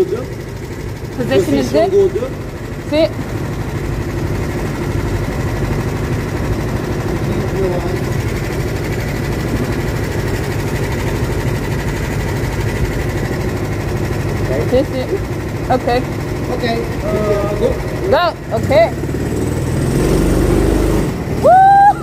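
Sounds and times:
go-kart engine idling: 0.0 - 22.0.

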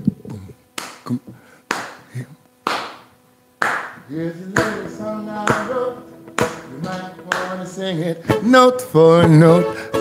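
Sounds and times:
hand claps: 0.8 - 4.0, 4.6 - 4.8, 5.4 - 5.7, 6.4 - 7.8
song playing: 4.2 - 10.0.

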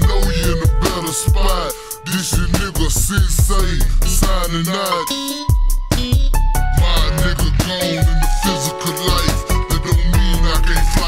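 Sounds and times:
deep bass line: 0.0 - 11.0
slowed rapping over a beat: 0.0 - 11.0
steady hi-hat beat: 0.0 - 11.0.

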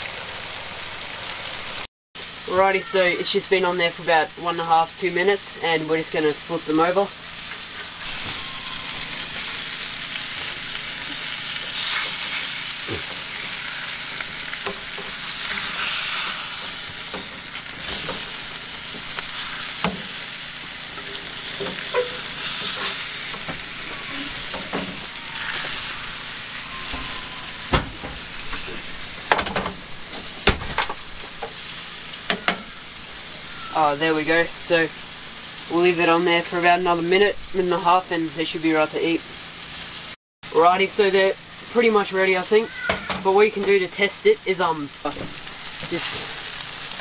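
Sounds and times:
fish sizzling in frying pan: 0.0 - 47.0
spatula scraping and knocking pan: 7.5 - 33.0.

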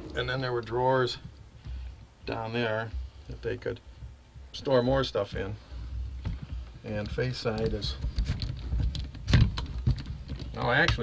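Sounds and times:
low rumble: 0.0 - 2.3
handling rustling and knocks: 0.0 - 11.0.

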